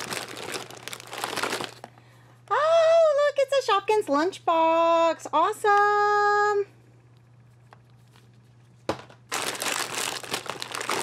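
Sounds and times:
foil packets crinkling: 0:00.0 - 0:02.1, 0:09.3 - 0:11.0.

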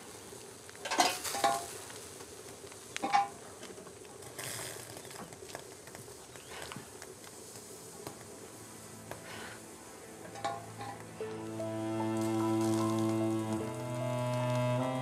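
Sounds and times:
faint hiss: 0:00.0 - 0:15.0
dishes and utensils clattering: 0:00.8 - 0:01.7, 0:10.2 - 0:11.0.

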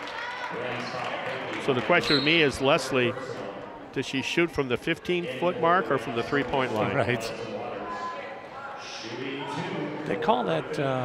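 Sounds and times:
indistinct voices in a gymnasium: 0:00.0 - 0:11.0.

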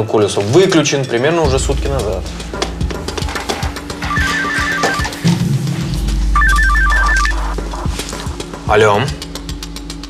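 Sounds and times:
background music with low drone: 0:00.0 - 0:10.0
mobile phone ringtone beeps: 0:04.1 - 0:05.2, 0:06.4 - 0:07.6.

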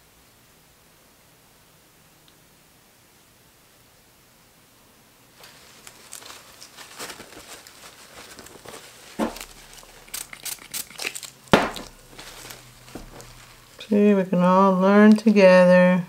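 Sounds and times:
gloved hands crinkling and rustling: 0:05.3 - 0:15.5
sharp knocks: 0:11.5 - 0:12.1.

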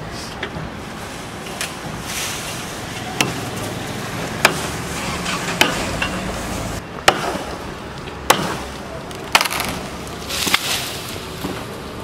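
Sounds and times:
steady background noise: 0:00.0 - 0:12.0
machete chopping branch: 0:03.2 - 0:03.6, 0:04.4 - 0:04.8, 0:05.5 - 0:06.2, 0:07.0 - 0:07.6, 0:08.3 - 0:11.7.

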